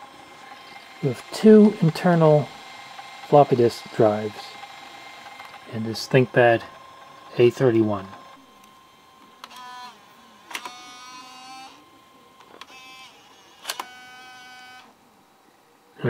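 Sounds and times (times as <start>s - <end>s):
disk drive motor whirr: 0.0s - 16.0s
disk drive clicks: 4.6s - 5.6s, 8.0s - 11.0s.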